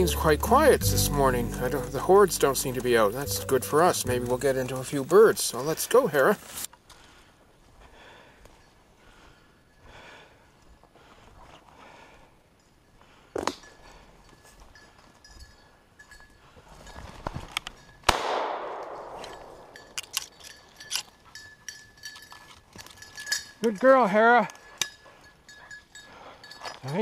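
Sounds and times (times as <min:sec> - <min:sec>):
footsteps rustling through brush: 0:00.6 - 0:06.7
light metallic clinks: 0:12.5 - 0:18.1, 0:18.8 - 0:27.0
shotgun shot echoing: 0:18.1 - 0:19.8.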